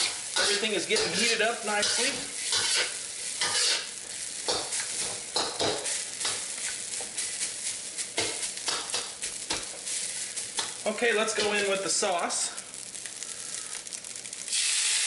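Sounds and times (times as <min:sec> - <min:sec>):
spatula scraping a wok: 0:00.0 - 0:10.8
rice sizzling in oil: 0:00.0 - 0:15.0.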